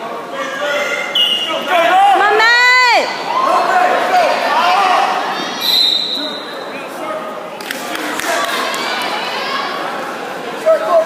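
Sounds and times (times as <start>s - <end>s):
spectators shouting: 0.4s - 6.5s.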